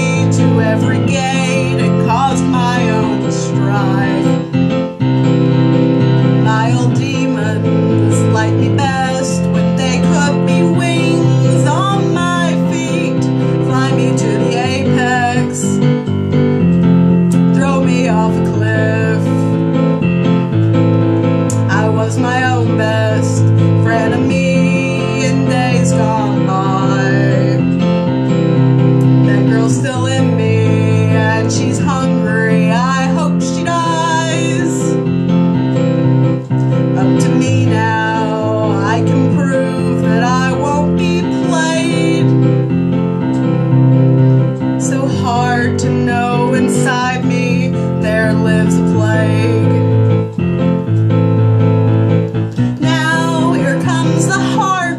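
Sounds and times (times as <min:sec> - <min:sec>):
woman singing: 0:00.0 - 0:04.9, 0:05.9 - 0:20.1, 0:21.5 - 0:28.1, 0:29.0 - 0:35.2, 0:36.9 - 0:42.8, 0:44.6 - 0:50.0, 0:52.8 - 0:54.9
piano chords on keyboard: 0:00.0 - 0:54.9.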